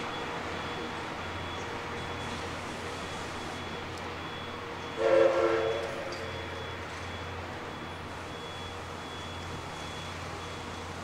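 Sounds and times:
train whistle blast: 4.9s - 6.3s.

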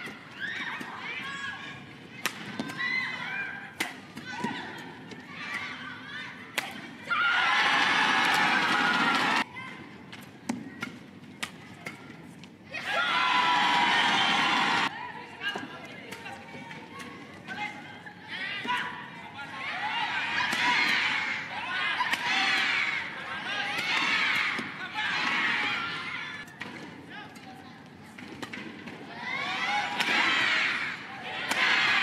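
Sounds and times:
crowd shouting and cheering: 4.3s - 9.7s, 12.7s - 15.1s, 18.4s - 26.5s, 29.1s - 32.0s
racket striking shuttlecock: 29.9s - 30.3s.

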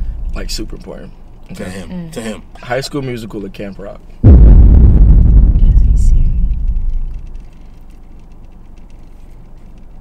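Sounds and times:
low rumble: 0.0s - 0.7s, 4.2s - 8.0s.

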